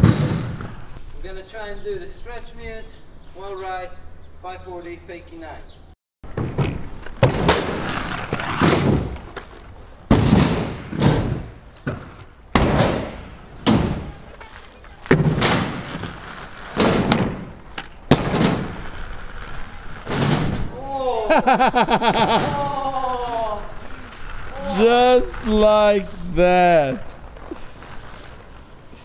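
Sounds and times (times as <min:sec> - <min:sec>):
skate wheels rolling on concrete: 0:00.0 - 0:04.1, 0:06.3 - 0:29.0.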